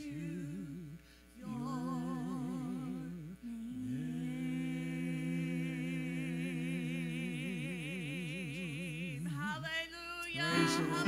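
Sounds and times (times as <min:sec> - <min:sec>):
woman singing with vibrato: 0:09.4 - 0:11.0.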